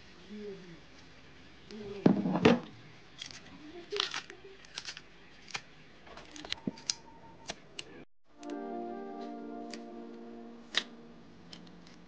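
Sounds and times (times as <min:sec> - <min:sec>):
banana skins tearing and snapping: 0:03.2 - 0:05.7.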